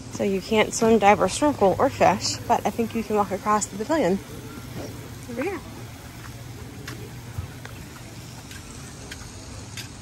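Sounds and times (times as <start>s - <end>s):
footsteps on wooden boardwalk: 4.7s - 10.0s.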